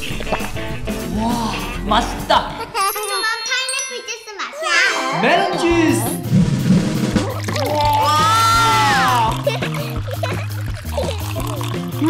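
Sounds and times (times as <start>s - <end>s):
girl speaking high-pitched: 2.6s - 5.2s
light tinkling chime: 2.8s - 4.6s.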